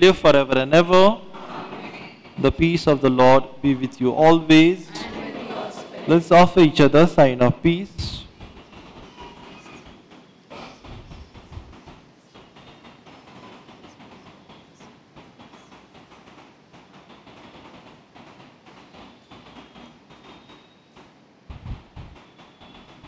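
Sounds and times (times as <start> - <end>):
shuffling and rustling: 8.0 - 15.7
knocks: 8.3 - 23.0.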